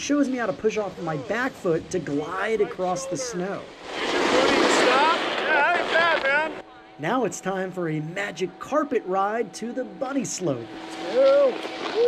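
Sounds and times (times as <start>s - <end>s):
snowboard scraping over snow: 0.6s - 6.6s.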